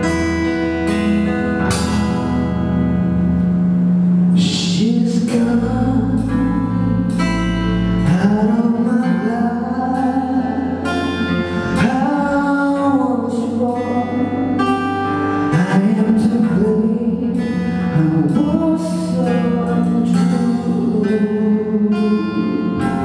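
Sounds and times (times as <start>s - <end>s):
bass guitar: 0.0s - 23.0s
strummed acoustic guitar: 0.0s - 23.0s
percussion struck with sticks: 1.7s - 4.5s
man singing into a microphone: 4.3s - 23.0s.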